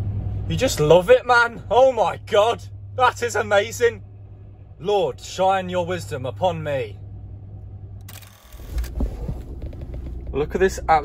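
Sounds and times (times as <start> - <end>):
low rumble inside van: 0.0 - 11.0.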